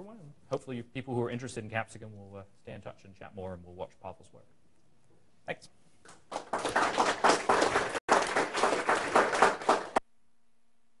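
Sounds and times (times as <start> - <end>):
audience applauding: 6.2 - 10.0.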